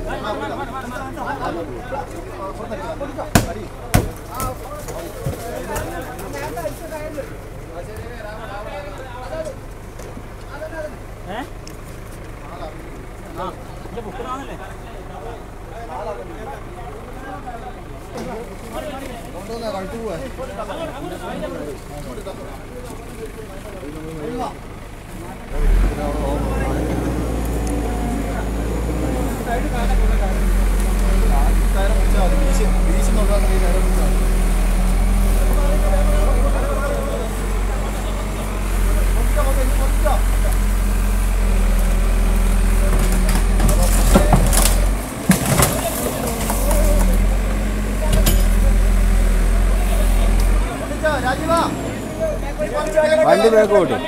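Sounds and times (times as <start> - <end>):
men talking: 0.0 - 54.0
truck engine running: 0.0 - 54.0.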